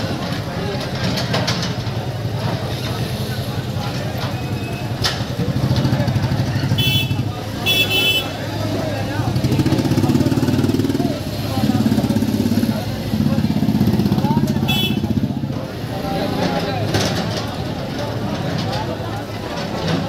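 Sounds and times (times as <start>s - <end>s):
crowd chatter: 0.0s - 20.0s
short horn beeps: 6.8s - 8.3s
diesel engine revving: 8.4s - 18.7s.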